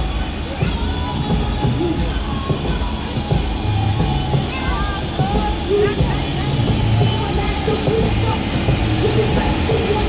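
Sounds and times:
faint crowd voices: 0.0s - 10.0s
low motor rumble: 0.0s - 10.0s.

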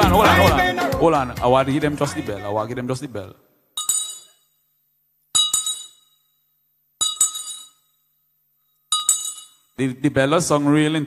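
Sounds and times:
brass handbell ringing: 3.8s - 4.4s, 8.9s - 9.7s.

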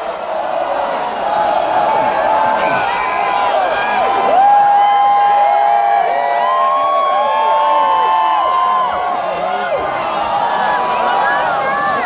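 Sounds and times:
large crowd cheering: 0.0s - 12.0s.

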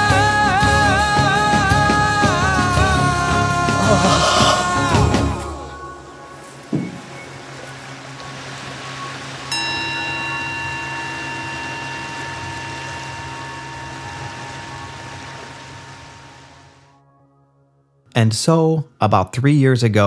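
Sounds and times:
steady hiss: 3.7s - 16.9s
bell stroke ringing: 9.5s - 15.5s.

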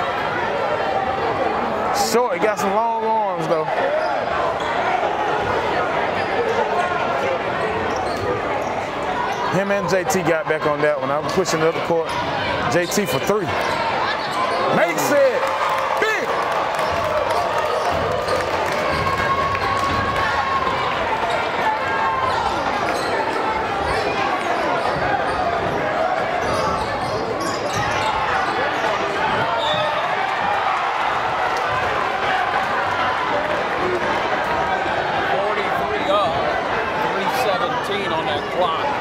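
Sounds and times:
crowd shouting and cheering: 0.0s - 39.0s.

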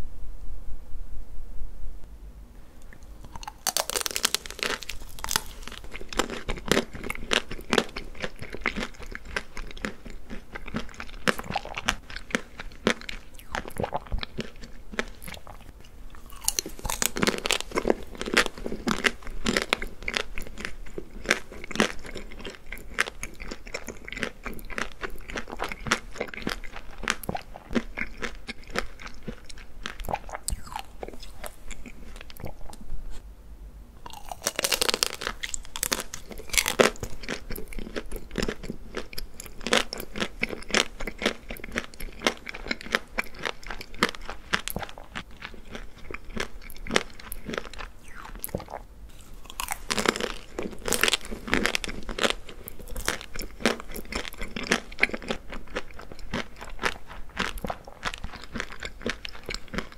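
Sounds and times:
wet chewing: 2.8s - 33.2s, 34.0s - 59.9s
chocolate shell crunching: 3.0s - 32.6s, 34.0s - 59.9s.

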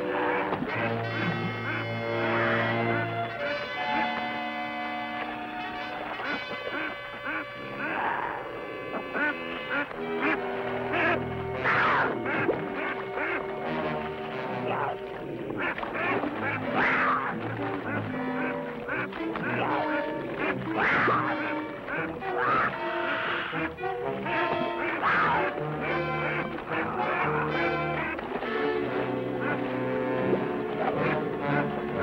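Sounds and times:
background music with held notes: 0.0s - 32.0s
goose honking: 0.0s - 32.0s
bird thrashing in water: 12.0s - 32.0s.

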